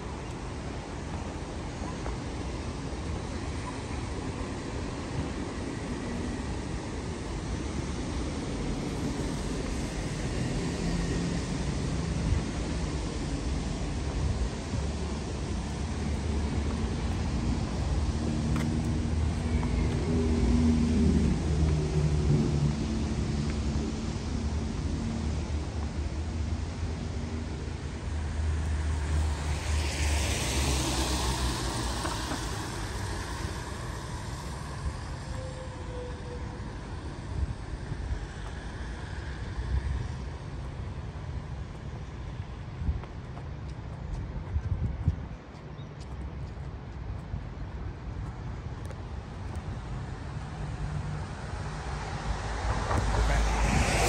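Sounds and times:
tyre hiss on wet road: 0:04.4 - 0:41.4, 0:49.1 - 0:54.0
car engines rumbling: 0:07.2 - 0:45.0, 0:46.1 - 0:54.0.

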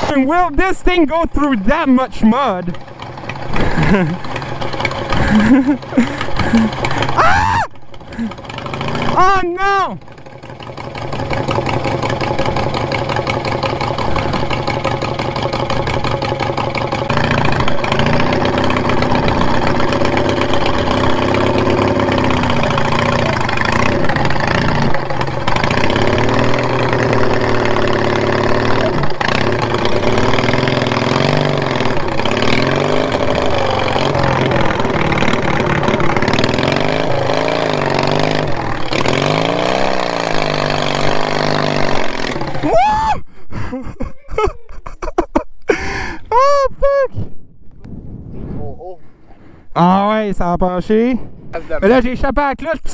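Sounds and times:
riding lawnmower engine running: 0:00.0 - 0:46.4.

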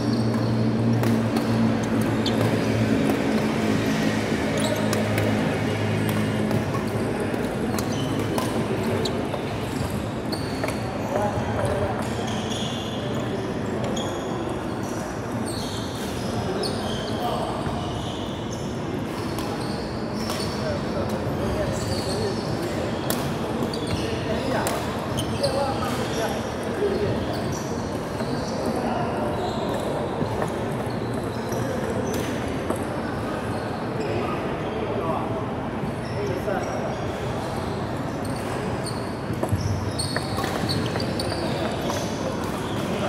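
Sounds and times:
shoes squeaking on wooden court: 0:00.0 - 0:34.4, 0:36.0 - 0:43.0
voices in echoing hall: 0:00.0 - 0:43.0.

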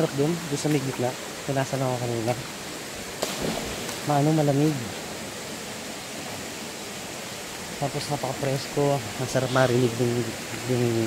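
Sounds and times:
man's voice: 0:00.0 - 0:02.4, 0:07.8 - 0:11.0
stream flowing: 0:00.0 - 0:11.0.

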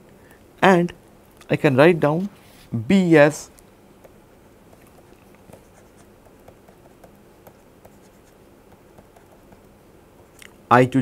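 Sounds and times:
stylus scratching on pen tablet: 0:04.7 - 0:09.7.

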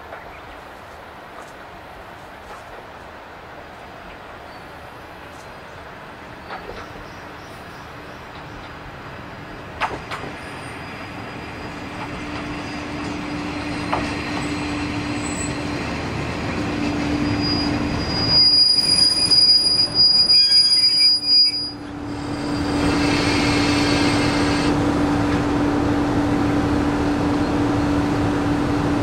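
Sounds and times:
diesel railcar engines droning: 0:00.0 - 0:29.0
high brake squeal: 0:10.0 - 0:15.7, 0:16.9 - 0:24.7.

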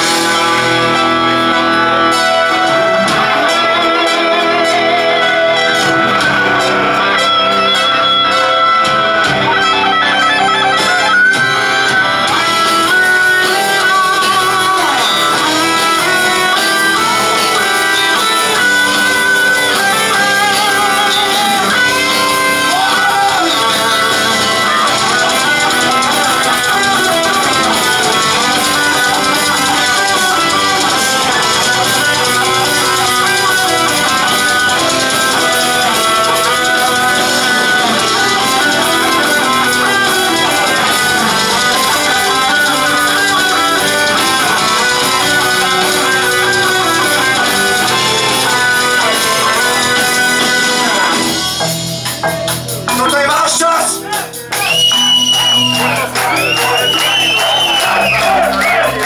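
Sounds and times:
rock band playing electric guitars: 0:00.0 - 0:59.0.

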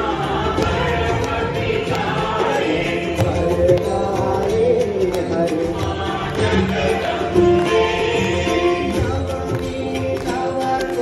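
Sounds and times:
group singing devotional song: 0:00.0 - 0:11.0
hands clapping: 0:00.0 - 0:11.0.

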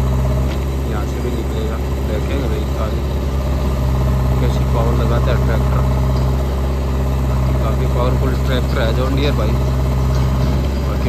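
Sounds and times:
diesel engines running: 0:00.0 - 0:11.0.

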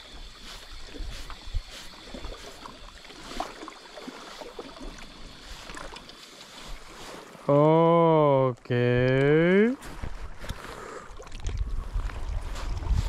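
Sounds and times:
sea water washing: 0:00.0 - 0:08.7, 0:10.3 - 0:13.0
wind: 0:00.0 - 0:13.0.

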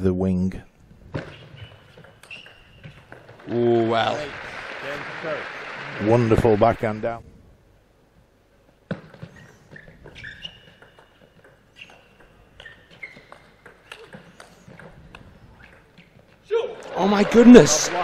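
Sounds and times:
shoes squeaking on floor: 0:01.1 - 0:03.5, 0:08.9 - 0:16.5.

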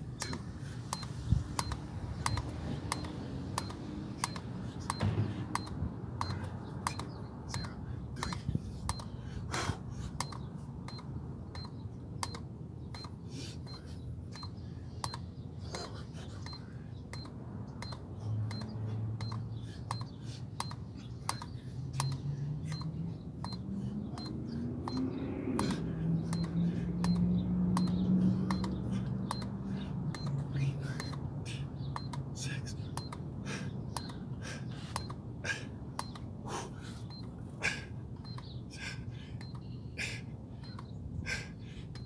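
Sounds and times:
counter beep-click: 0:00.2 - 0:07.7, 0:08.9 - 0:09.1, 0:10.2 - 0:13.8, 0:16.4 - 0:23.6, 0:24.2 - 0:25.7, 0:26.3 - 0:30.4, 0:31.0 - 0:31.2, 0:32.0 - 0:32.3, 0:33.0 - 0:33.3, 0:34.0 - 0:34.2, 0:35.0 - 0:35.2, 0:36.0 - 0:36.2, 0:37.1 - 0:37.3, 0:38.2 - 0:38.5, 0:39.4 - 0:39.7, 0:40.6 - 0:40.9.

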